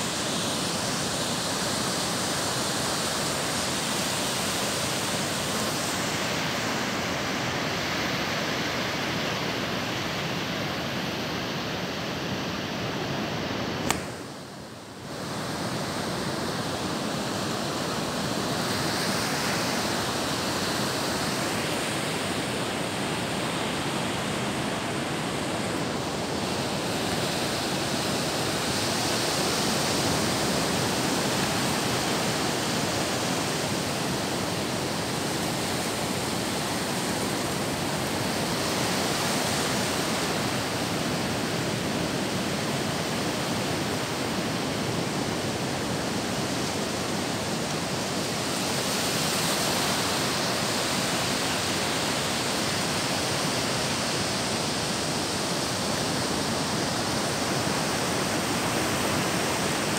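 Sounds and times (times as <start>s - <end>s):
surf breaking on a beach: 0.0s - 59.9s.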